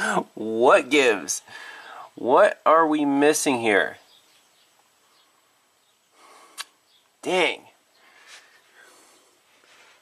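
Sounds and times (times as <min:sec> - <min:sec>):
faint breathy hiss: 0:00.0 - 0:02.5, 0:03.7 - 0:10.0.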